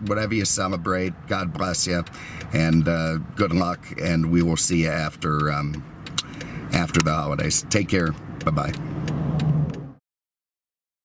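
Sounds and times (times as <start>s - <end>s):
car cabin engine hum: 0.0s - 10.0s.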